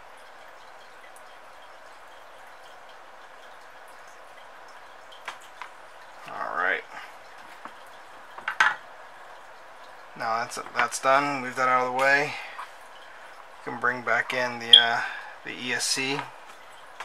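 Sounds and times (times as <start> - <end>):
steady low hiss: 0.0 - 17.0.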